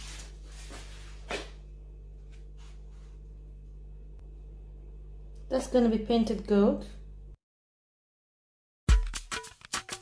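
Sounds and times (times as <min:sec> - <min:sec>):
low electrical hum: 0:00.0 - 0:07.4.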